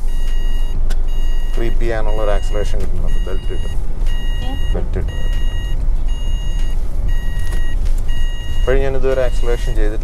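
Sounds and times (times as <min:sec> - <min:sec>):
car warning chime beeping: 0:00.0 - 0:10.0
engine and road rumble: 0:00.0 - 0:10.0.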